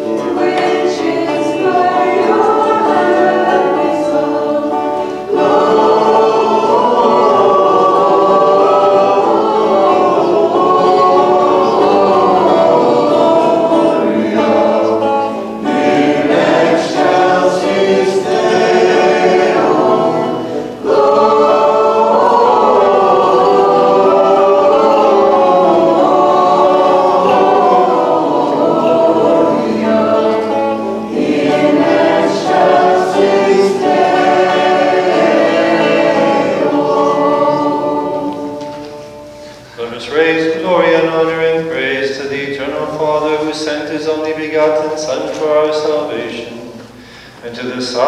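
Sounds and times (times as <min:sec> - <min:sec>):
choir singing a hymn: 0:00.0 - 0:48.0.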